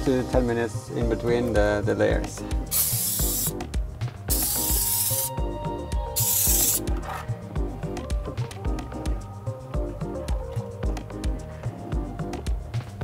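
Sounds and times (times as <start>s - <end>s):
background music with steady beat: 0.0s - 13.0s
aerosol spray can hissing: 2.7s - 3.6s, 4.3s - 5.4s, 6.1s - 7.0s.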